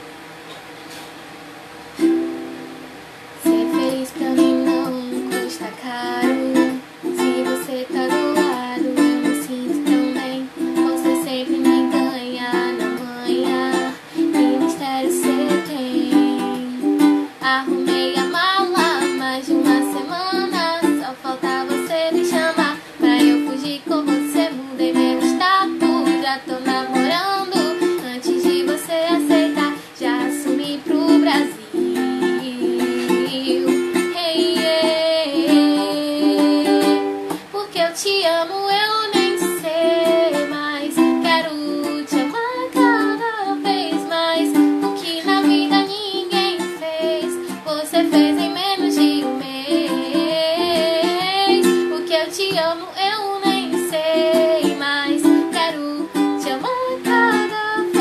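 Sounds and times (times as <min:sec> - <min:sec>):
ukulele strumming: 0:01.9 - 0:58.0
woman singing: 0:03.4 - 0:58.0.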